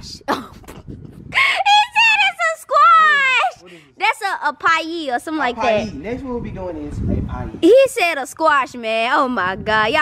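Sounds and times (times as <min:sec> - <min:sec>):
voices exclaiming: 0:01.4 - 0:04.2.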